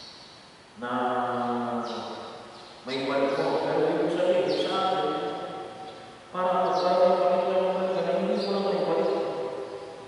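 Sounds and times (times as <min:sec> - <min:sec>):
man chanting a prayer: 0:00.8 - 0:09.7.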